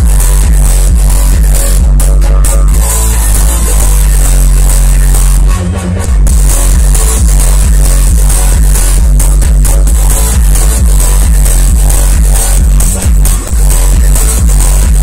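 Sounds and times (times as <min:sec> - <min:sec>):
electronic dance music: 0:00.0 - 0:15.0
heavy sustained bass: 0:00.0 - 0:15.0.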